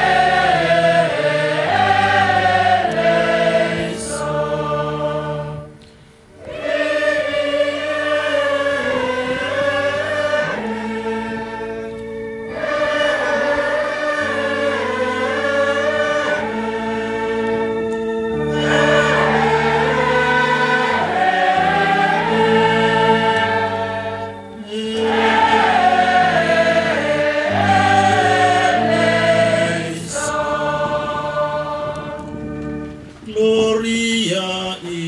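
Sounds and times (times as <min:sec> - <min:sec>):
mixed choir singing: 0:00.0 - 0:33.8.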